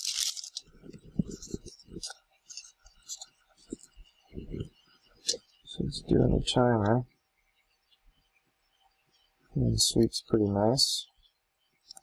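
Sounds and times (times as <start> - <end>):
faint background whir: 0.0 - 12.0.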